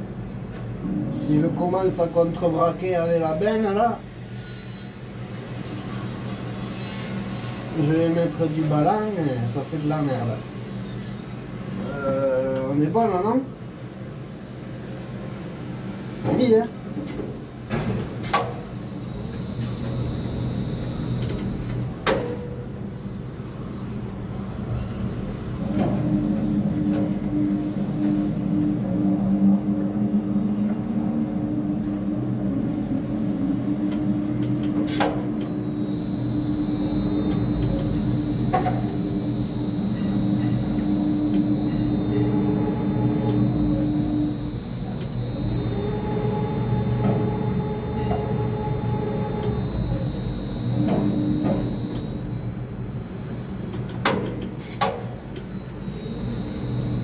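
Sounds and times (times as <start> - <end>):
crane motor hum and whine: 16.8 - 24.9, 31.3 - 57.0
sharp clicks: 18.3 - 21.9, 34.6 - 57.0.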